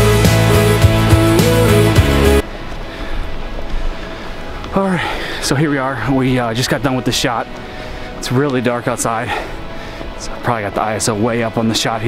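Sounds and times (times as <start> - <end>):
rock music with guitar: 0.0 - 2.4
noisy outdoor ambience: 2.4 - 12.0.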